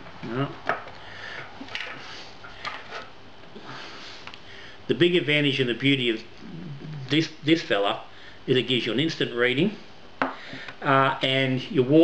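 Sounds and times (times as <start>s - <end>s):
soft breath noise: 3.6s - 4.9s.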